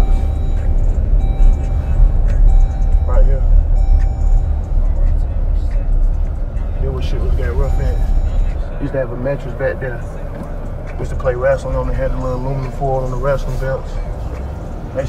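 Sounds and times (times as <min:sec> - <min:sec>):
background music: 0:00.0 - 0:15.0
car engine and road rumble: 0:00.0 - 0:15.0.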